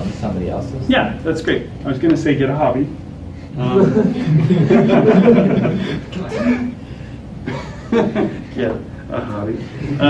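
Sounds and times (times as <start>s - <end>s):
man chuckling: 3.6s - 6.8s, 7.4s - 8.6s.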